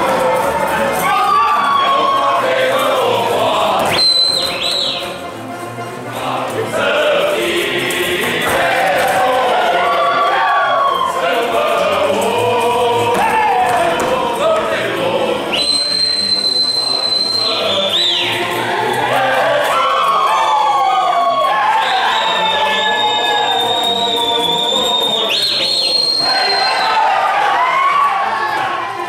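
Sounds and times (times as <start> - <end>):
folk ensemble singing in chorus: 0.0 - 29.0
long shrill whistles: 3.9 - 5.3, 15.5 - 18.4, 19.8 - 27.3.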